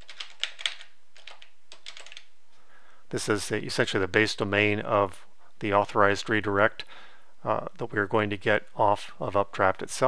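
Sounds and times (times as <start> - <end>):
typing on computer keyboard: 0.0 - 2.3.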